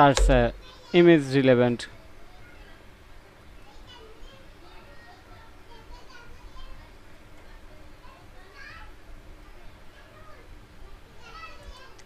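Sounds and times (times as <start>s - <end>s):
low steady hum: 0.0s - 0.8s
faint children's voices: 1.8s - 12.0s.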